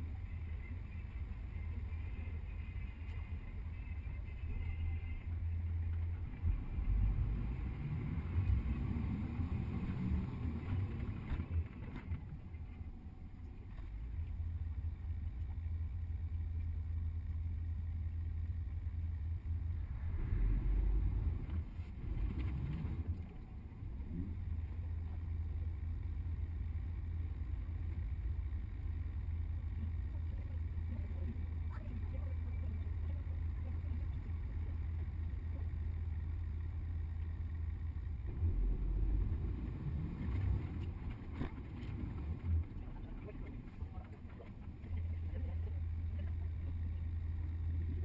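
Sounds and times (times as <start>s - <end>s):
bus engine rumble: 0.0s - 48.0s.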